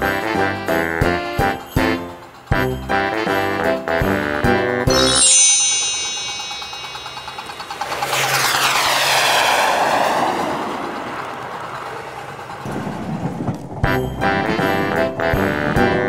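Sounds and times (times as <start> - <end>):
model train wheels rattling: 0.8 - 3.7.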